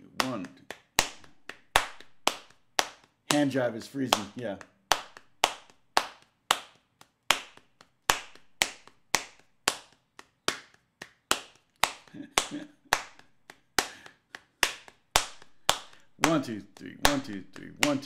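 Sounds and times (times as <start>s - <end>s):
hands slapping thighs and clapping: 0.0s - 18.0s.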